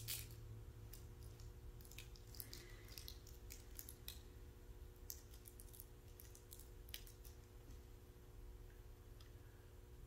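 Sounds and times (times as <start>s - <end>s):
bread crackling in fingers: 0.0s - 4.3s
low room hum: 0.0s - 10.0s.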